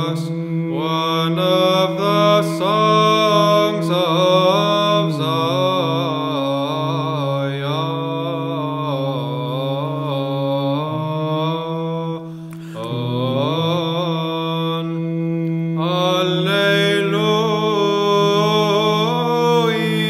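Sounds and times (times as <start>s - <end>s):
sung chant melody: 0.0s - 20.0s.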